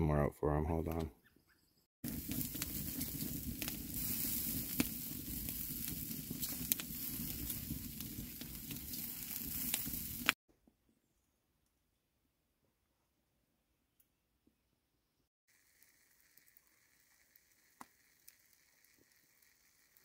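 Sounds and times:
meat sizzling on a grill: 0:02.0 - 0:10.4, 0:15.5 - 0:20.0.

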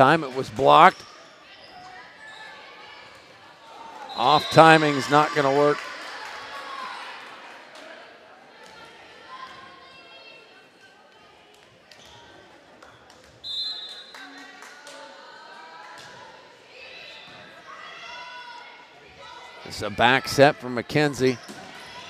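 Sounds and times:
crowd voices echoing: 0:00.0 - 0:01.0, 0:03.8 - 0:07.4, 0:19.5 - 0:22.0
referee's whistle: 0:04.1 - 0:05.0, 0:13.4 - 0:14.2.

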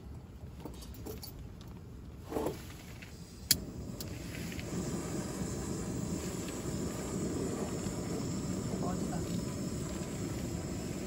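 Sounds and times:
gas burner flame rushing: 0:02.2 - 0:11.0
piezo igniter clicking: 0:03.4 - 0:04.8.

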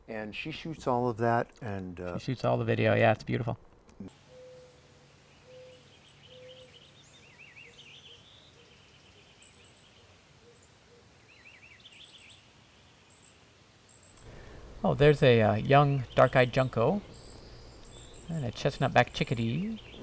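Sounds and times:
small birds chirping: 0:00.4 - 0:20.0.

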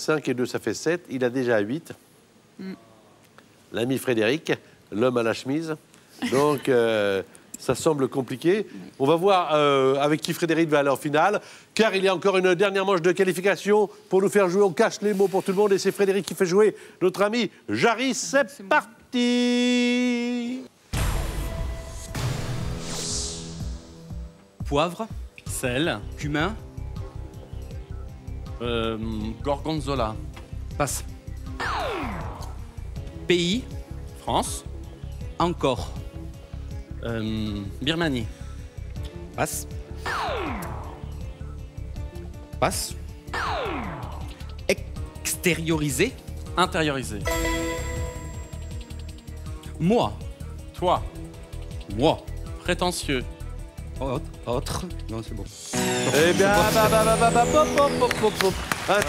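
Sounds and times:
game-show music with low beat: 0:21.0 - 0:59.0
ticking countdown: 0:47.2 - 0:49.9
electronic jingle with falling sweep: 0:55.8 - 0:58.6.

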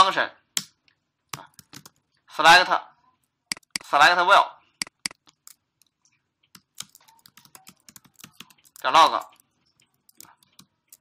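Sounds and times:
computer keyboard typing: 0:01.3 - 0:02.1, 0:03.5 - 0:03.9, 0:04.8 - 0:11.0.

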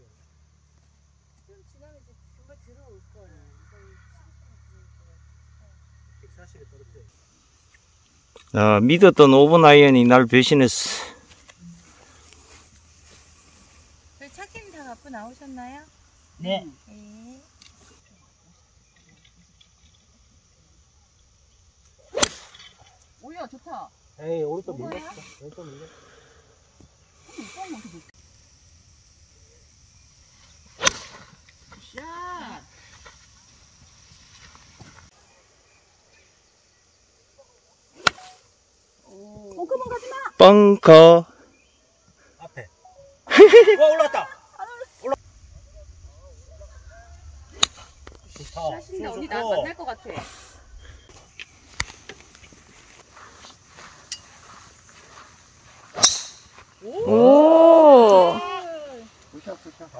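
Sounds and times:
golf club striking ball: 0:30.8 - 0:31.2, 0:38.0 - 0:38.4, 0:47.5 - 0:48.2, 0:56.0 - 0:56.5
golf driver striking ball: 0:30.8 - 0:31.2, 0:56.0 - 0:56.5.

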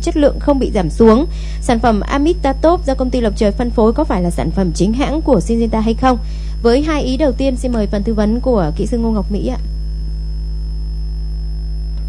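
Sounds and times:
electrical hum: 0:00.0 - 0:12.0
faint high whine: 0:00.0 - 0:12.0.

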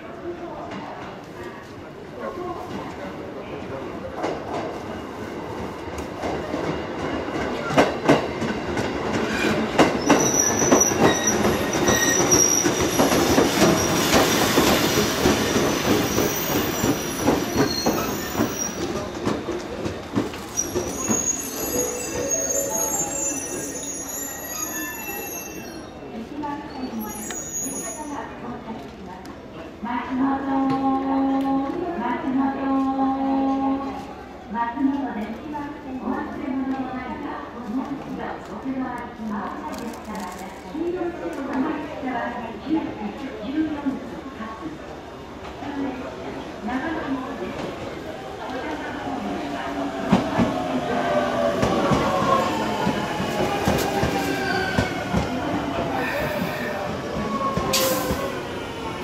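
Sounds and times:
train wheels clacking: 0:06.2 - 0:22.4, 0:50.0 - 0:58.4
train brakes squealing: 0:09.3 - 0:15.1, 0:15.7 - 0:19.1, 0:20.5 - 0:28.2, 0:55.8 - 0:58.8.

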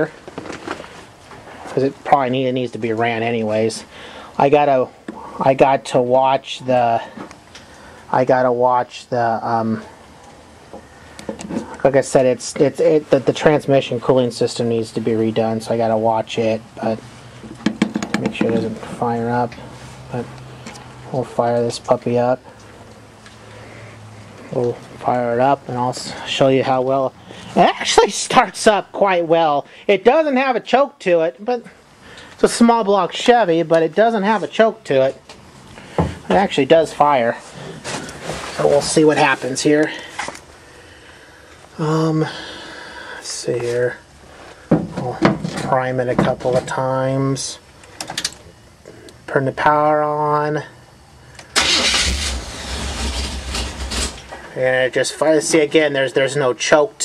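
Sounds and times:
faint low hum and hiss: 0:00.0 - 0:57.0
man's voice: 0:24.5 - 0:31.7, 0:32.4 - 0:35.2, 0:38.5 - 0:40.2
engine running with low rumble: 0:51.0 - 0:54.5
engine cranking and starting: 0:51.5 - 0:54.4.

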